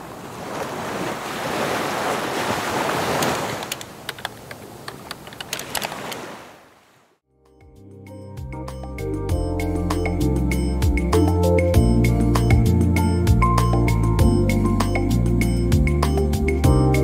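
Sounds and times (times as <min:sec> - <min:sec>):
ocean surf: 0:00.0 - 0:07.0
music with mallet-like notes: 0:07.4 - 0:17.0.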